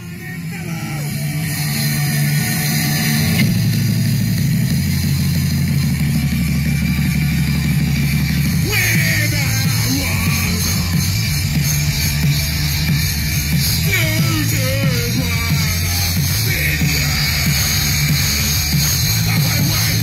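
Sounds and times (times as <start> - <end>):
singer yelling into microphone: 0.0 - 1.4, 8.5 - 11.3, 13.7 - 18.1, 19.1 - 20.0
punk rock band playing: 0.0 - 20.0.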